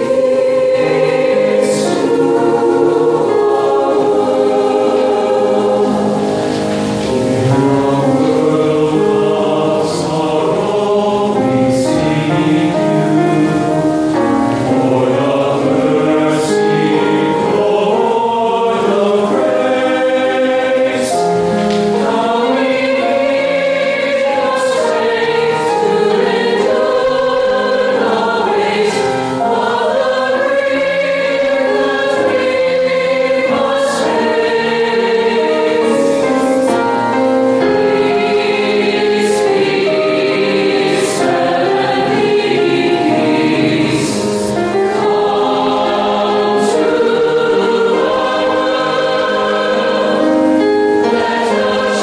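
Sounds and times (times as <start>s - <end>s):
mixed choir singing: 0.0s - 52.0s.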